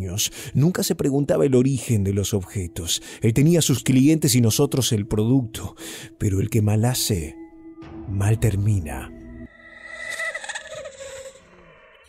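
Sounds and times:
warbling wavering tones: 7.6 - 12.0.

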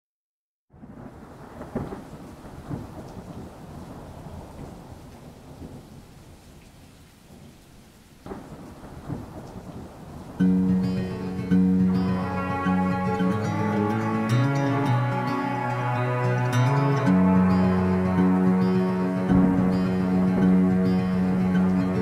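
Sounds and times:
thunder rolling: 0.7 - 6.2, 8.2 - 22.0
steady rain: 0.7 - 22.0.

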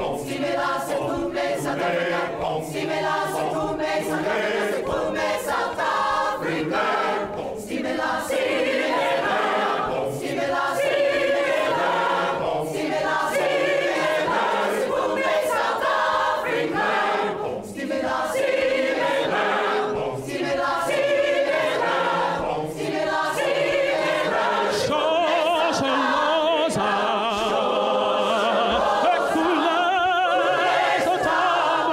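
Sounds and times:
choir singing a cappella: 0.0 - 31.9
male soloist singing: 24.8 - 31.9.

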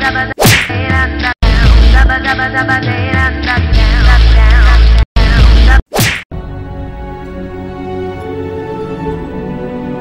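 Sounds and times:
soft slow music: 6.4 - 10.0.

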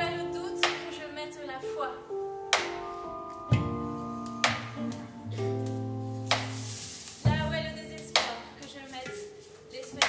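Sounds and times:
leaf rattle swishes: 6.2 - 9.7.

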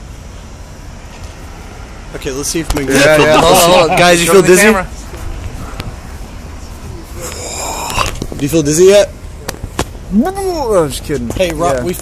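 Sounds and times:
low rumbling traffic ambience: 0.0 - 12.0.

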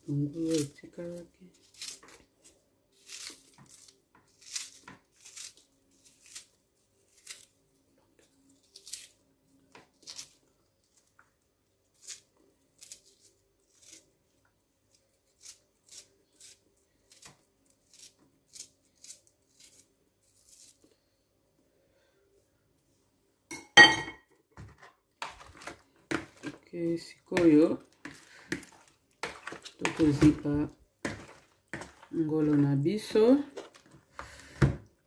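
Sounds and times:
knife slicing onion: 0.4 - 7.5, 27.3 - 32.6.

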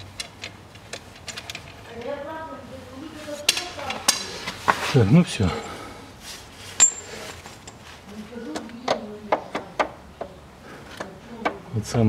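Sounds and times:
metal tools knocking: 6.8 - 7.8.

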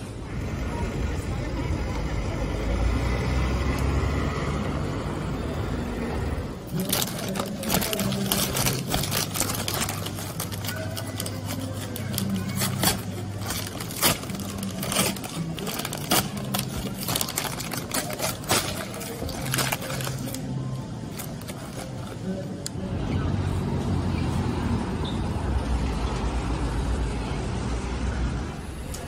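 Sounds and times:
music: 6.1 - 29.0
paper bag crinkling: 6.7 - 22.4.

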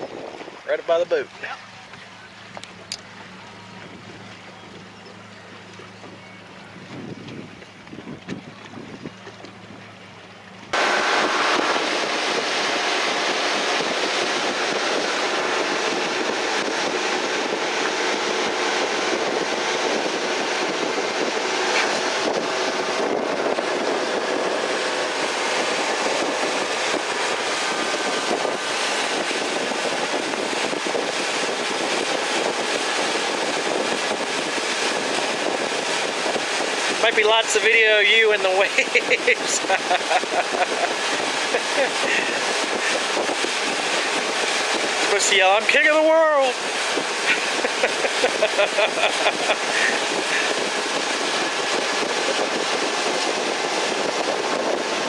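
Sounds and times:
motorboat engine: 0.0 - 55.0
wind on microphone: 0.0 - 55.0.

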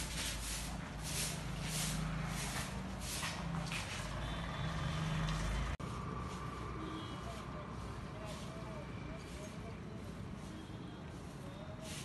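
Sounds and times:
vehicle engine humming: 0.0 - 11.4.

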